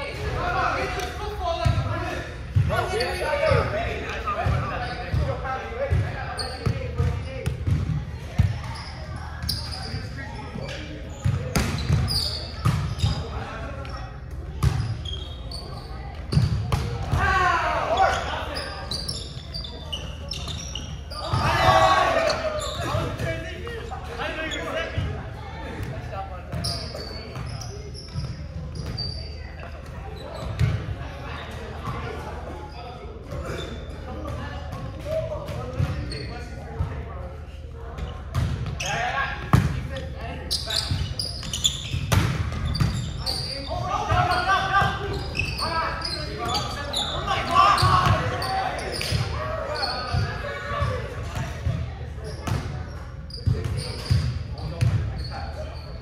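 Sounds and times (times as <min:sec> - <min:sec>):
players shouting: 0:21.1 - 0:23.4.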